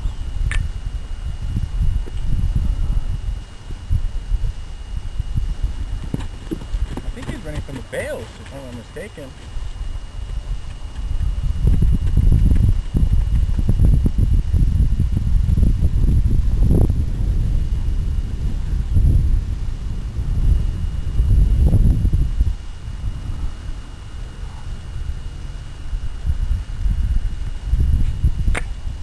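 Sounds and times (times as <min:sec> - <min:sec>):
low rumble on microphone: 0:00.0 - 0:29.0
hooves on dirt: 0:05.4 - 0:14.1.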